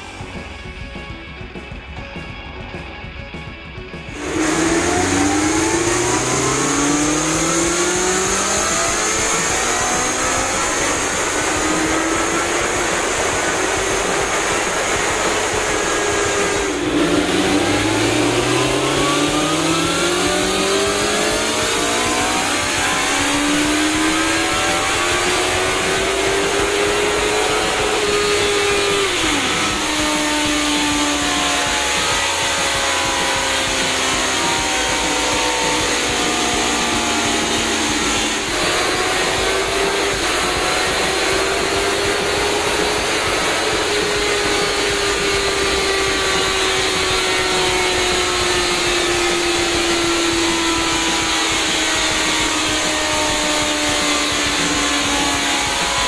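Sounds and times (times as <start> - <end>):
motorcycle engine revving hard: 4.1 - 56.0.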